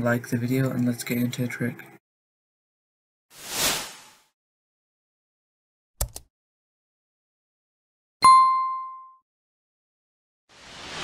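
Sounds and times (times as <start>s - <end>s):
notification bell ding: 8.2s - 9.2s.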